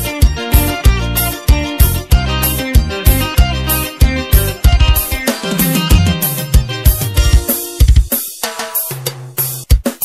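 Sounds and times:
low bass line: 0.0s - 7.4s
drum kit: 0.0s - 10.0s.

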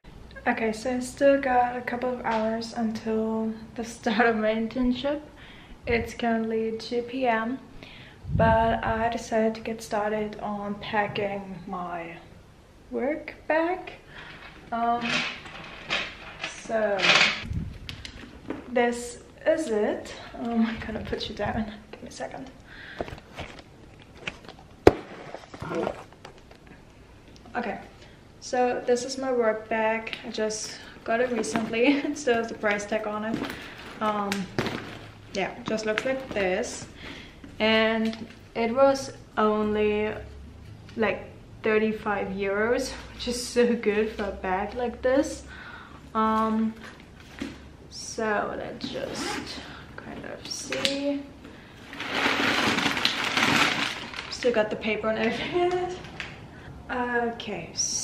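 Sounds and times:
packing paper crinkling: 52.0s - 54.4s.

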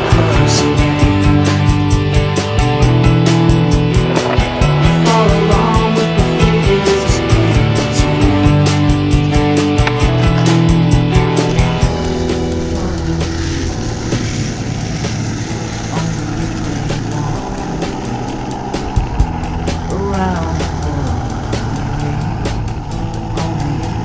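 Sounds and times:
music soundtrack: 0.0s - 24.0s
skateboard wheels rolling on asphalt: 0.0s - 24.0s
wind noise: 0.0s - 24.0s.

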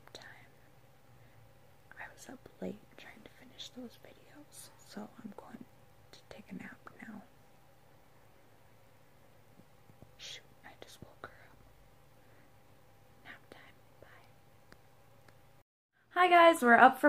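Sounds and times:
woman whispering: 0.0s - 0.6s, 1.9s - 7.3s, 10.2s - 11.6s, 13.2s - 14.3s.

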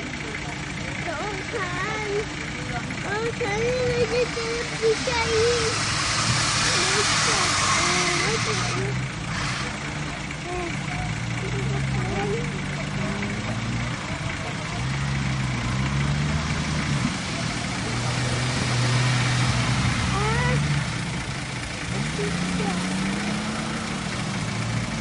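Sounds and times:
faint voices: 0.0s - 25.0s
off-road vehicle engine: 0.0s - 25.0s.

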